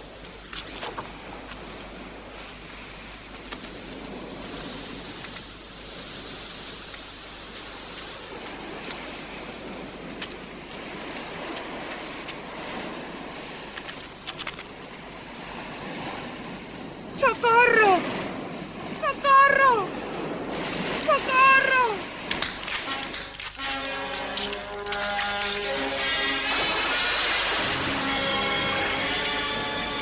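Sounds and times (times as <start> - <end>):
surf washing against rocks: 0.0 - 30.0.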